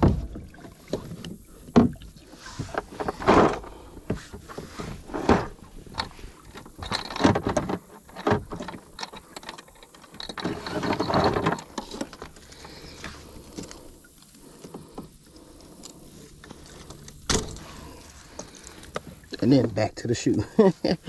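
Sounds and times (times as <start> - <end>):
fishing gear knocks and clicks: 0.0 - 20.5
scraping rustle: 2.2 - 19.6.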